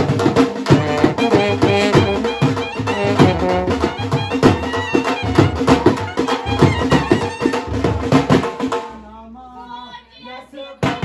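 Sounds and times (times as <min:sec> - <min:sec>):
wind instrument melody: 0:00.0 - 0:08.5
double-headed drum beaten fast: 0:00.0 - 0:09.1.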